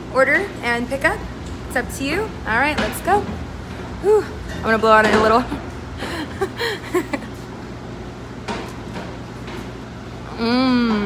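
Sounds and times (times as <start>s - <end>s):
low room hum: 0.0s - 11.0s
person laughing: 6.0s - 7.4s.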